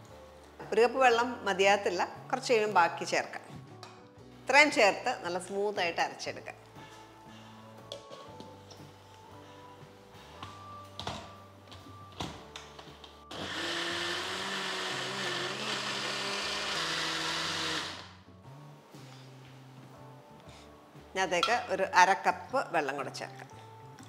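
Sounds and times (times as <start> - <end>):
mixer grinder running: 13.3 - 18.2.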